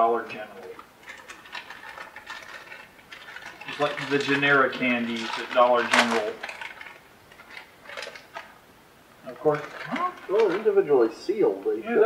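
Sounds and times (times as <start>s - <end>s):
plastic bag crinkling: 0.0s - 11.6s.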